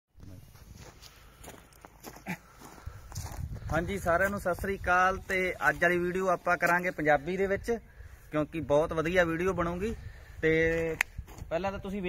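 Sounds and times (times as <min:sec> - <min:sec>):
footsteps scuffing on dirt: 0:00.2 - 0:06.9, 0:10.7 - 0:11.6.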